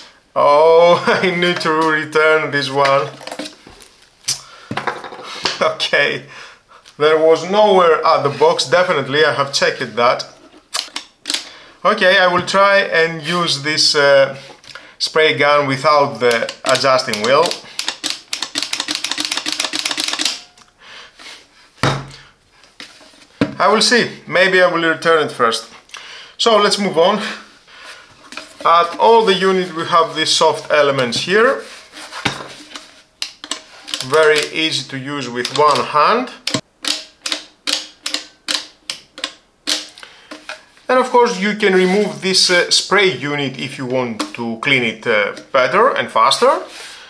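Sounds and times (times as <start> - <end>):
dull thump: 21.8 - 22.2.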